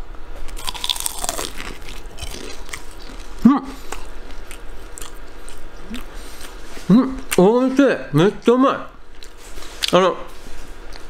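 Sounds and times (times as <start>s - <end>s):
crunching bites into fried food: 0.4s - 6.6s
chewing: 0.5s - 7.4s, 9.1s - 11.0s.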